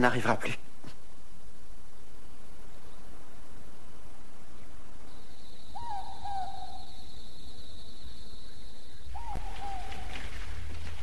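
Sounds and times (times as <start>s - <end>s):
owl hooting: 5.1s - 10.4s.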